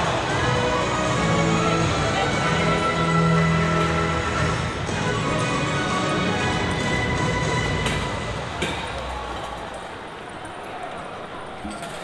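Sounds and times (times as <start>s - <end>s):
parade music: 0.0s - 8.6s.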